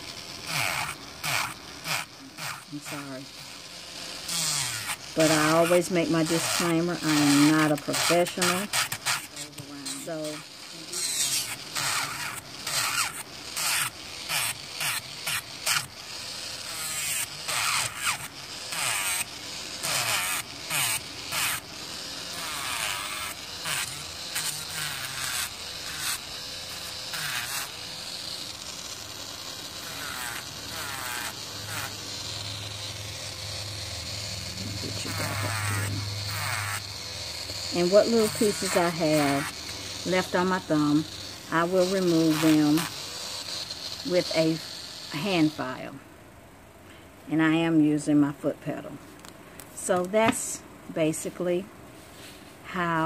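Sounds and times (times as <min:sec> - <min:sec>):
drill bit scraping nail: 0:00.0 - 0:45.8
electric nail drill buzzing: 0:00.0 - 0:46.0, 0:47.3 - 0:53.0.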